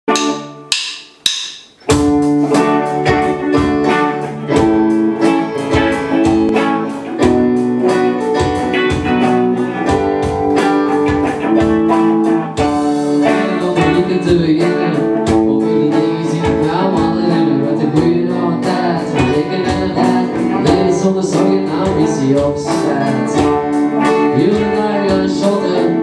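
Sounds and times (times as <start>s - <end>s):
sharp drum hits: 0.1s - 15.6s
rock band playing live: 0.1s - 26.0s.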